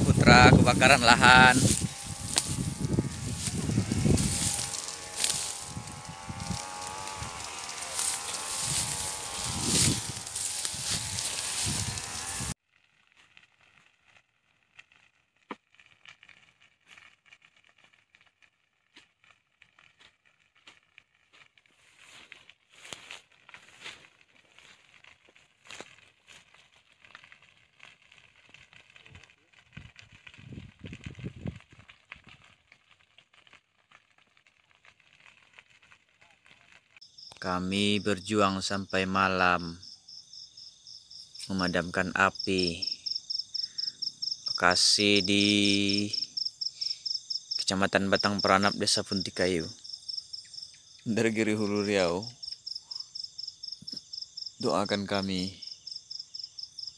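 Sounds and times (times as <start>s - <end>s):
burning grass crackling: 0.0s - 56.9s.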